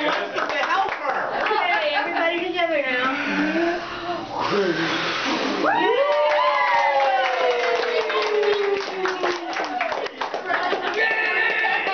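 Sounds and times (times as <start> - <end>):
people clapping: 0.0 - 1.9, 5.7 - 11.9
excited voices: 5.6 - 10.0, 10.6 - 11.9.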